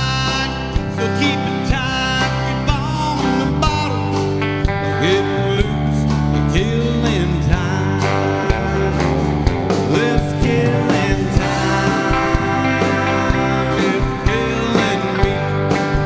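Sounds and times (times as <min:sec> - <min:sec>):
bass: 0:00.0 - 0:16.0
electric guitar: 0:00.0 - 0:16.0
keyboards: 0:00.0 - 0:16.0
male lead vocal: 0:00.0 - 0:16.0.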